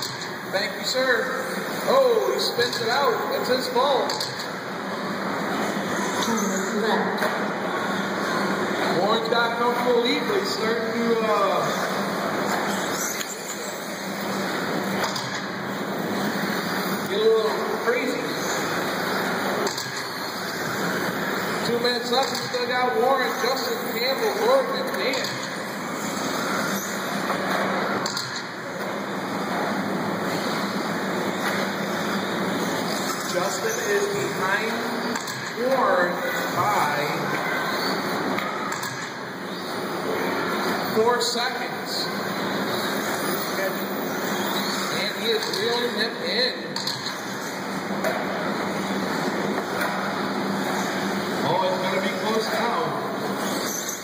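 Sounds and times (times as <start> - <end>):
rc cars running: 0.0 - 54.0.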